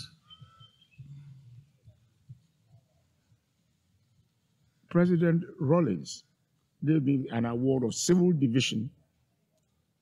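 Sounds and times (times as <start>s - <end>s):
whistled bird calls: 0.0s - 1.4s.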